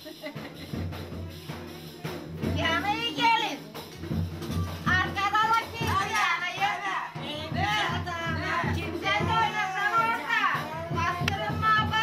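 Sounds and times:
music with low drum beat: 0.0 - 12.0.

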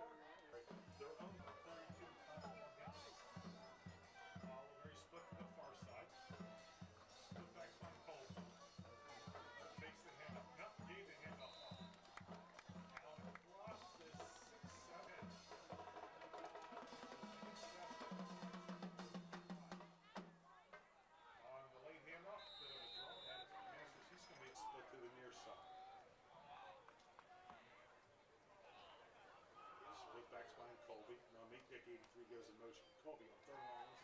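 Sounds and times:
crowd voices: 0.0 - 34.0
drum beating steadily: 0.7 - 20.4.

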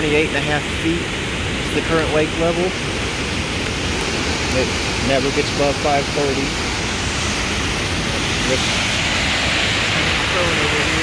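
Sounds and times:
water rushing through spillway: 0.0 - 11.0.

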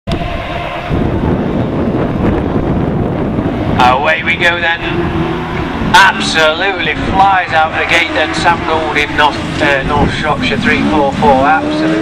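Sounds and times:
racing car engines revving: 0.1 - 12.0
wind buffeting microphone: 0.1 - 12.0.

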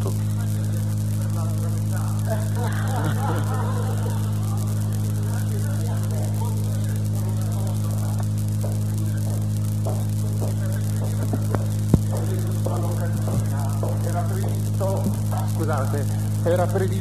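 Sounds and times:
electrical mains hum: 0.0 - 17.0
faint indistinct voices: 0.0 - 17.0.

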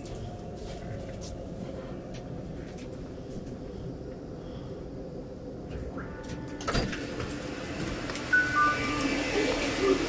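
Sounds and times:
station noise: 5.0 - 10.0
high door beeping: 8.2 - 10.0
two-note chime: 8.3 - 9.3.

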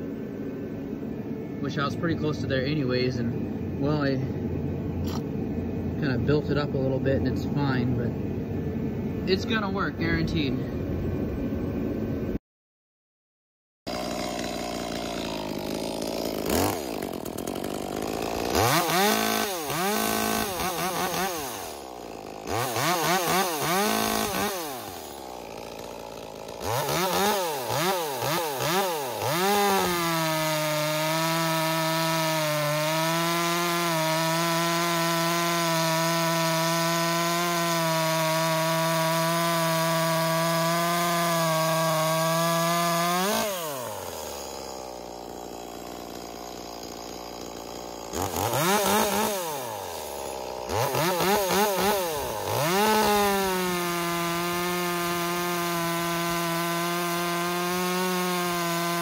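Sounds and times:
chainsaw revving: 0.0 - 8.5, 13.9 - 59.0.

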